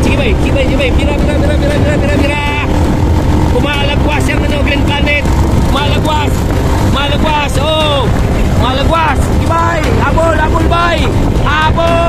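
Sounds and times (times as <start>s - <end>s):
person talking loudly: 0.0s - 2.8s, 3.5s - 12.0s
wind and vehicle rumble: 0.0s - 12.0s.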